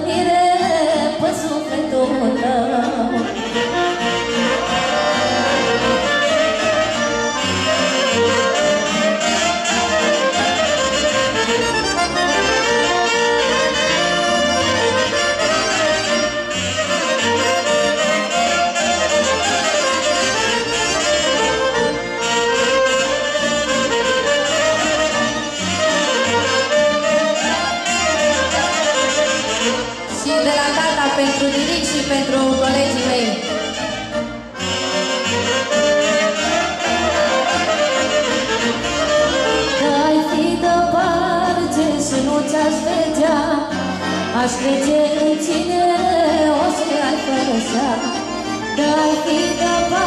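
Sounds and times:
live folk dance band: 0.0 - 50.0.

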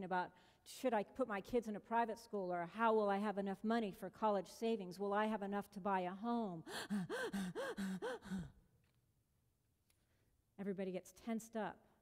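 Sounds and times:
woman gasping: 6.6 - 8.7.

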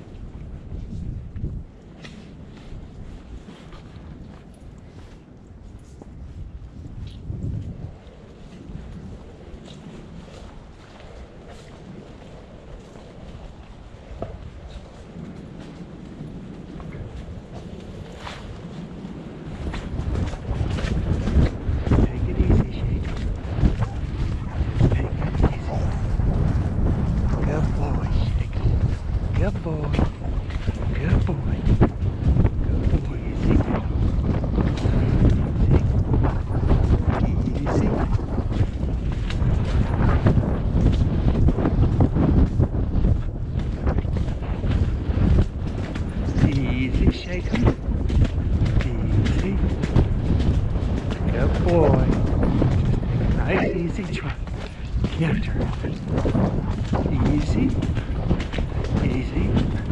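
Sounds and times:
horse hoofbeats on dirt trail: 0.0 - 59.9
wind buffeting microphone: 0.0 - 59.9.

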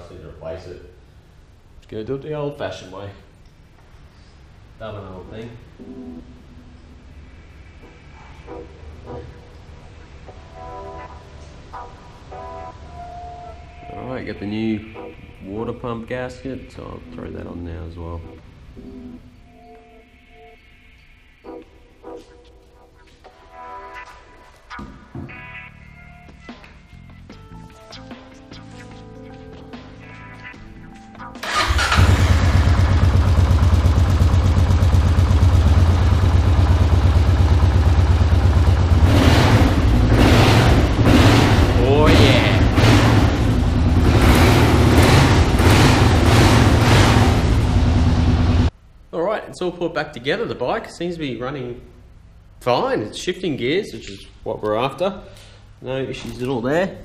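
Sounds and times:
background music: 5.3 - 32.8
motorcycle engine running: 31.5 - 48.7.

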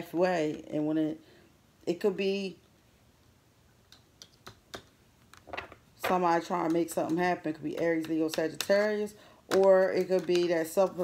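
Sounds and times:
cards clicking and tapping: 3.9 - 11.0.

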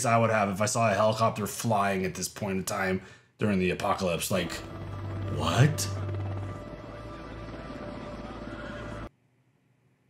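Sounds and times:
low drone with held tones: 4.4 - 9.1
soundtrack music: 4.6 - 9.1.

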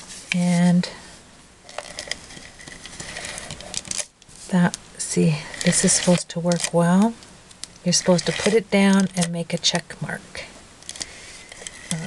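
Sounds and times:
applicator scraping paper: 1.7 - 4.6, 5.3 - 7.1, 7.9 - 9.6.

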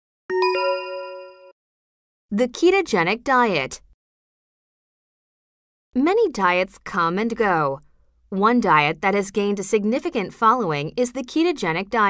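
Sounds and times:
two-note bell chime: 0.3 - 1.6.

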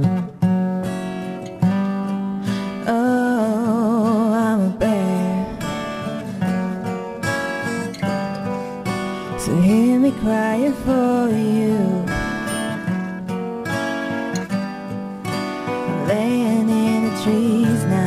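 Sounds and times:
acoustic guitar strumming: 0.0 - 18.0
person singing: 2.4 - 7.2, 8.0 - 13.1, 15.4 - 18.0.

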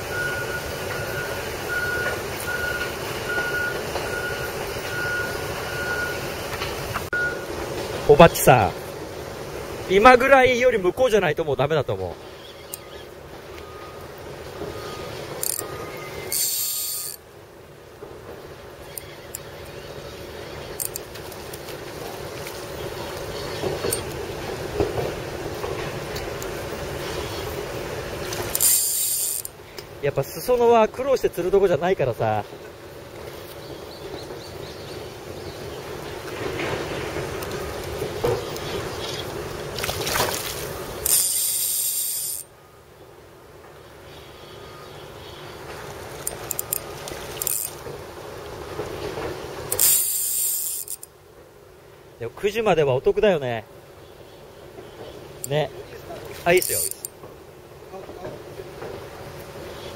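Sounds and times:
fishing reel cranking: 15.4 - 17.2, 20.8 - 21.1, 28.5 - 29.6, 41.0 - 42.5, 46.2 - 46.8, 47.4 - 47.8, 49.7 - 51.1, 56.5 - 57.1
water splashing from thrashing fish: 39.7 - 40.7.

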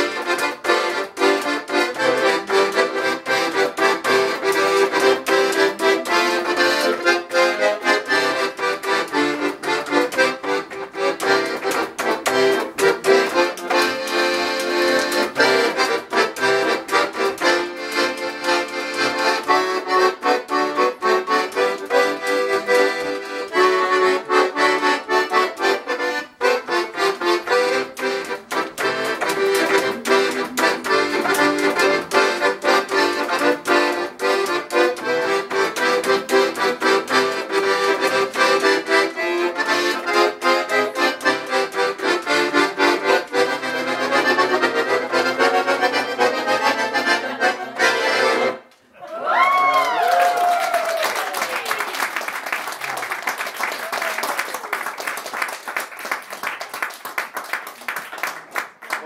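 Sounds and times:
piano accordion playing lively tune: 0.0 - 48.7.

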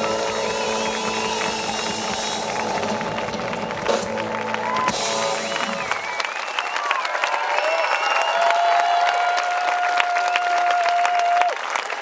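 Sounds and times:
crowd noise: 0.0 - 12.0.

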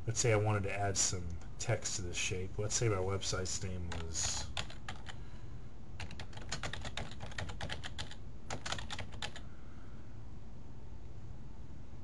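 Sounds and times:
typing on computer keyboard: 3.9 - 5.2, 6.0 - 9.4.

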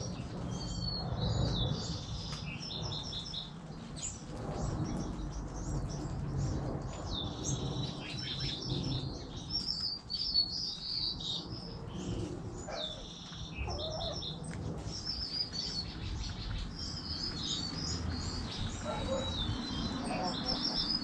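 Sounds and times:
small birds twittering: 0.0 - 21.0.

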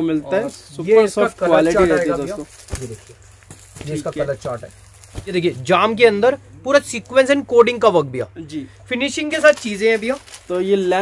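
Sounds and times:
man talking: 0.0 - 3.2, 3.8 - 11.0.

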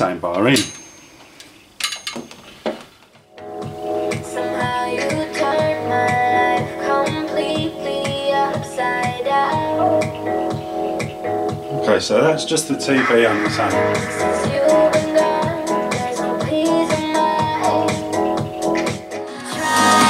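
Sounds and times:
guitar music through tv speakers: 3.3 - 20.0.

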